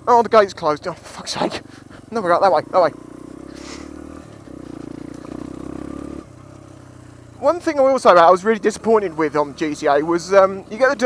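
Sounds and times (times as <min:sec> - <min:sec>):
motorcycle engine under throttle: 0:00.0 - 0:11.0.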